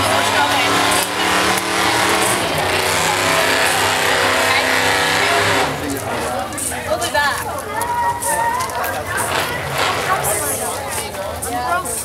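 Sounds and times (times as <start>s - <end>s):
motor engine running: 0.0s - 6.3s
people's voices: 0.0s - 12.0s.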